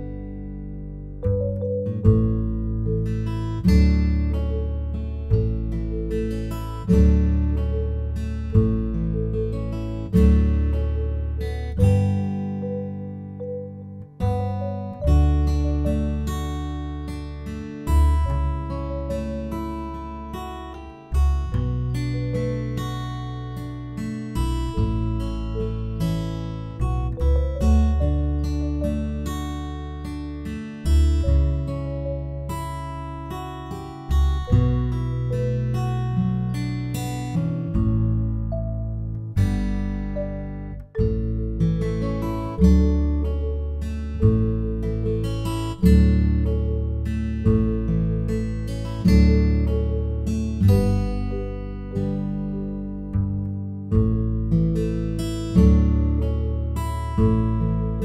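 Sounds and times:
acoustic guitar chords: 0.0 - 58.0.

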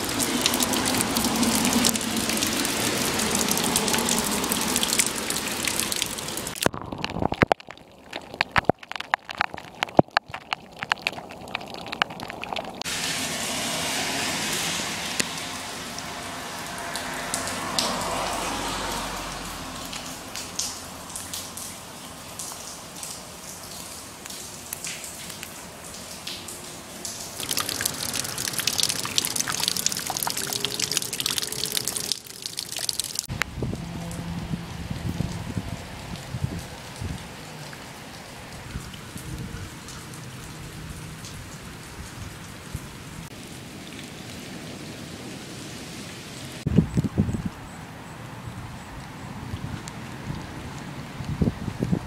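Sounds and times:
rain drops striking: 0.0 - 52.0
rainwater running: 0.0 - 52.0.

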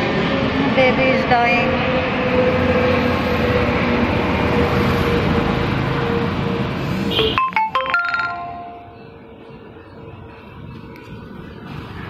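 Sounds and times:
roadside traffic noise: 0.0 - 12.0
electronic melody of beeps: 7.2 - 9.2.

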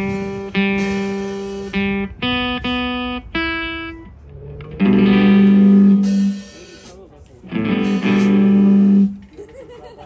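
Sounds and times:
acoustic guitar ringing notes: 0.0 - 9.3.

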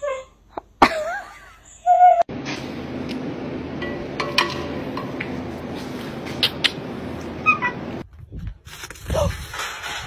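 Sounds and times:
steady background hum: 0.3 - 8.0.

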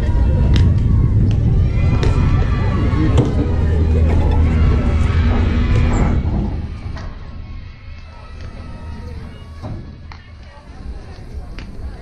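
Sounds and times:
indistinct voices: 0.0 - 12.0
steady low hum: 0.0 - 12.0.

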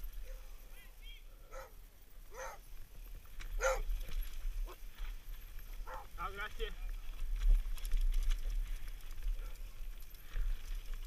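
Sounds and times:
dog barking: 1.5 - 2.6, 3.6 - 3.9, 5.8 - 6.1.

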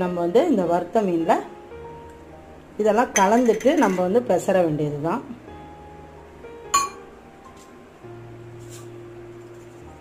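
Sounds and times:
metal cup clinking: 3.2 - 4.1.

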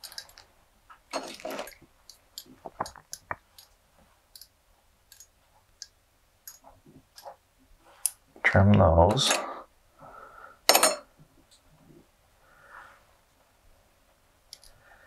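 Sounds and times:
materials rustling: 0.0 - 4.3.

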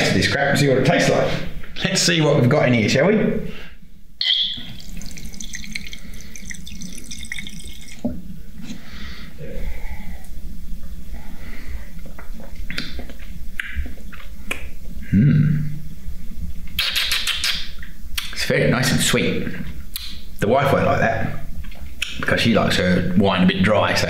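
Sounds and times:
liquid pouring into a glass: 4.2 - 8.2.

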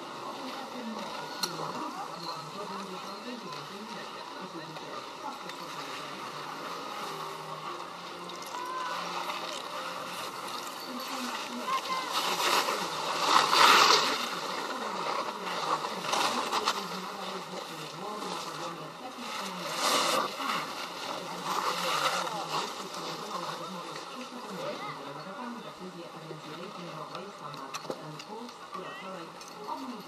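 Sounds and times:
edges scraping over snow: 0.0 - 30.0
faint voices: 0.0 - 30.0.

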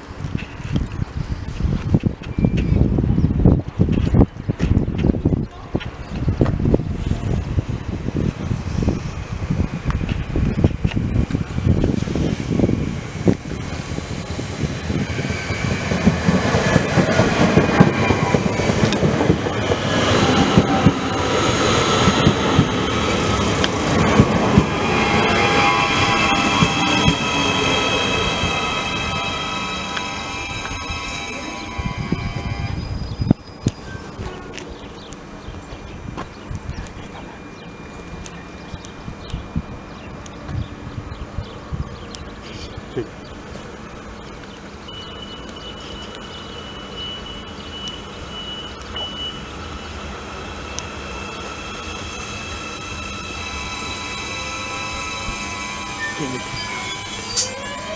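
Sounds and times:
train wheels rushing on rail: 0.0 - 57.9
high steady whining tones: 7.4 - 42.4, 44.2 - 57.9.

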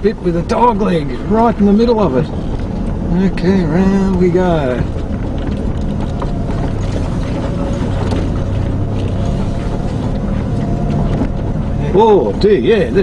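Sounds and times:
knocks and rattles: 0.0 - 13.0
vehicle engine running: 0.0 - 13.0.

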